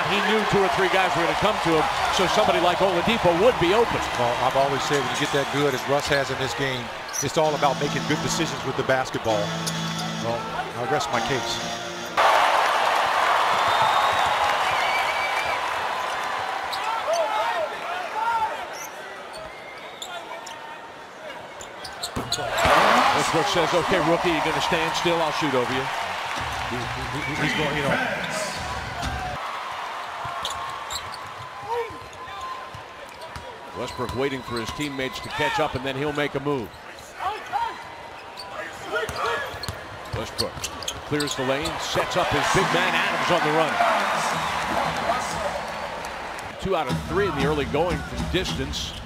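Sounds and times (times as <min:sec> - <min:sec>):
arena crowd noise: 0:00.0 - 0:49.0
sneakers squeaking: 0:06.9 - 0:12.2, 0:18.7 - 0:20.6, 0:21.6 - 0:23.1, 0:30.3 - 0:35.0, 0:36.7 - 0:42.4.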